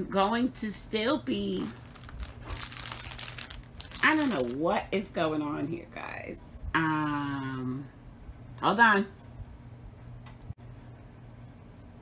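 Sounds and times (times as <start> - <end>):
rustling and crackling items: 1.3 - 4.8.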